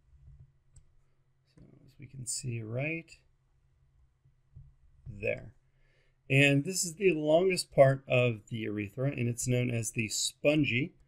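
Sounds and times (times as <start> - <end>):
man speaking: 2.0 - 3.2, 5.1 - 5.5, 6.3 - 11.0.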